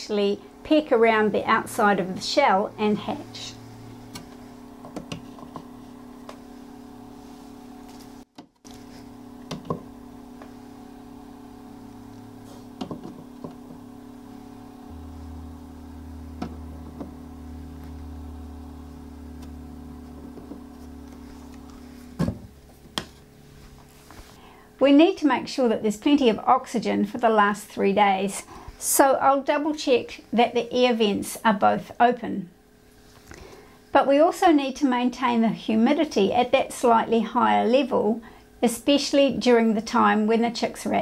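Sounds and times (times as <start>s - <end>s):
incubator low hum: 0.0s - 41.0s.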